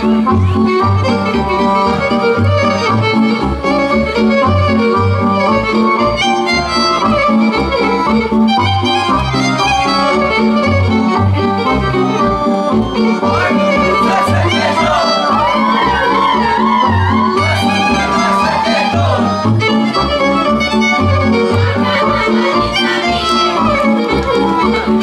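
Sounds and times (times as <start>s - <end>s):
folk dance tune on accordion: 0.0s - 25.0s
pulsing bass beat: 13.3s - 19.9s.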